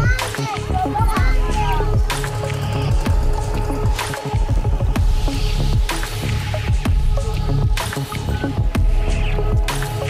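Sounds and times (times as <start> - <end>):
children calling out: 0.0 - 2.0
electronic music with steady beat: 0.0 - 10.0.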